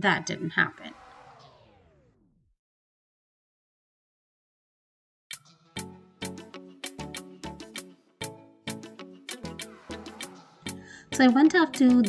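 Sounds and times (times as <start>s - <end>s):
pitched whoosh gliding down: 0.8s - 2.4s, 9.4s - 10.8s.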